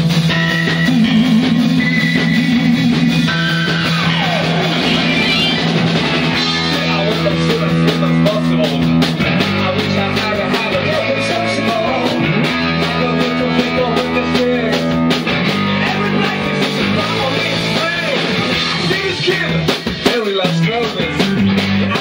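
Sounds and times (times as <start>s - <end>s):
live rock band playing: 0.0s - 22.0s.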